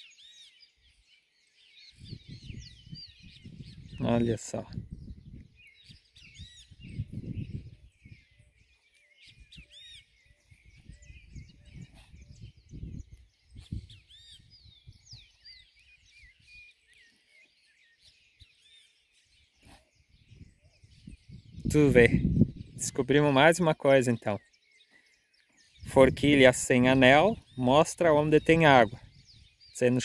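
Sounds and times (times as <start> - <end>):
small birds chirping: 0.0 - 30.0.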